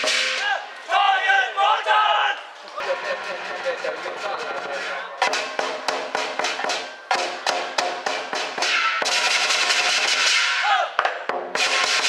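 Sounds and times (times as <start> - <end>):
drum roll: 2.8 - 12.0.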